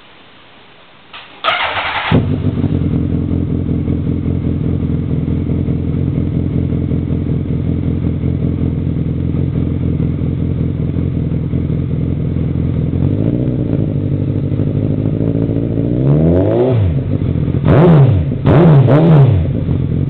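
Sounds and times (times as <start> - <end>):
motorcycle engine idling and revving: 1.4 - 20.0.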